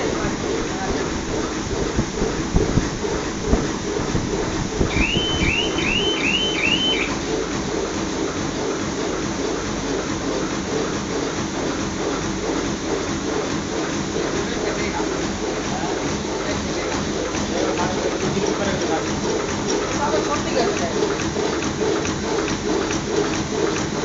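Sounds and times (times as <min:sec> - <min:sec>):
machine mechanical drone: 0:00.0 - 0:24.0.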